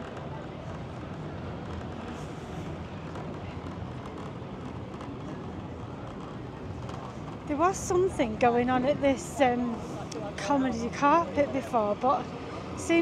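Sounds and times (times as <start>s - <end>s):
background bustle: 0.0s - 13.0s.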